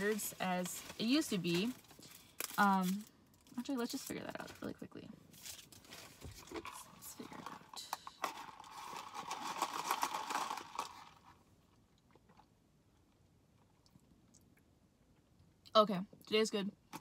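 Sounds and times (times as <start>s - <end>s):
plastic cup and ice rustling: 0.0s - 11.4s.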